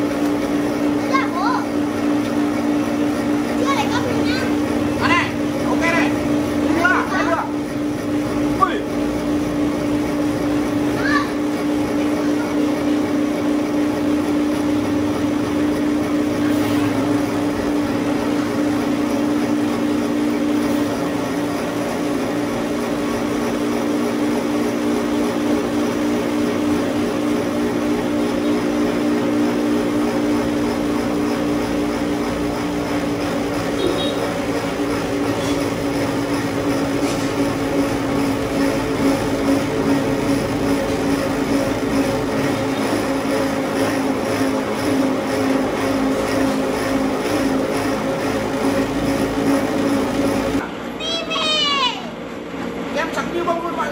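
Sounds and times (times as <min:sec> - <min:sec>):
cotton candy machine motor humming: 0:00.0 - 0:53.9.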